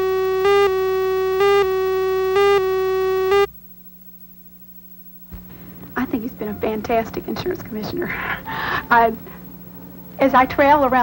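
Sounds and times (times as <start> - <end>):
countdown beeps: 0.0 - 3.5
faint hum: 0.0 - 11.0
steady buzzy tone: 0.0 - 11.0.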